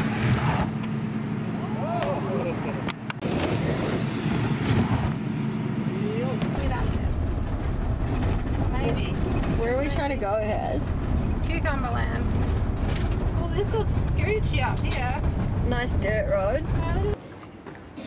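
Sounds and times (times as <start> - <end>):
van engine rumble from inside: 0.0 - 17.2.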